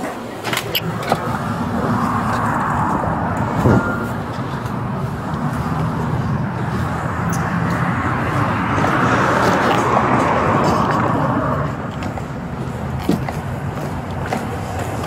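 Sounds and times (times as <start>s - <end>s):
road traffic noise: 0.0s - 15.0s.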